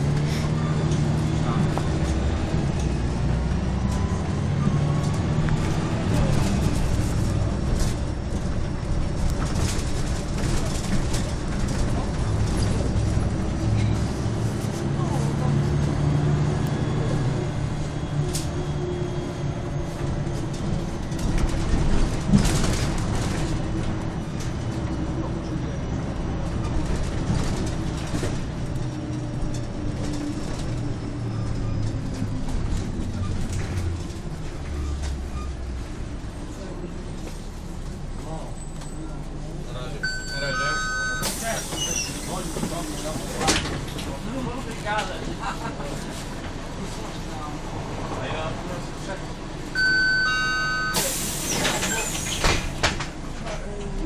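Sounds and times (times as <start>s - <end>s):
bus diesel engine: 0.0s - 54.0s.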